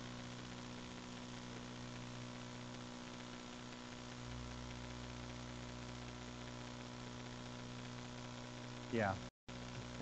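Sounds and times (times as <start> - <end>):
electrical mains hum: 0.0 - 10.0
person speaking: 8.9 - 9.3
faint hiss: 8.9 - 10.0.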